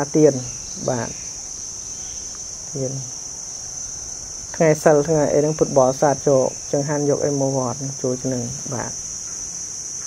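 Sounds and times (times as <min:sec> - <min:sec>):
person speaking: 0:00.0 - 0:01.2, 0:02.7 - 0:03.2, 0:04.5 - 0:09.0
high-pitched insects shrilling: 0:00.0 - 0:10.0.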